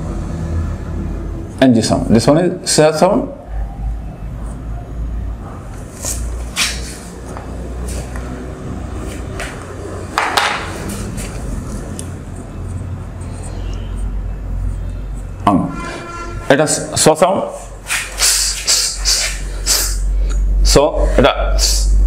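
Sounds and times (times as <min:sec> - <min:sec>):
marker scratching on whiteboard: 0:05.7 - 0:08.4, 0:10.6 - 0:16.5, 0:17.5 - 0:20.0.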